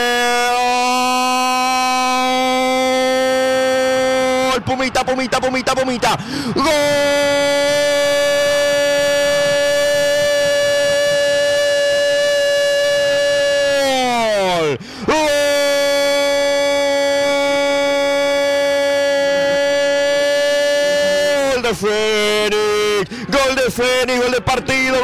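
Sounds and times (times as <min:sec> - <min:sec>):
commentator's long goal cry: 0:06.0 - 0:12.5, 0:13.2 - 0:21.8.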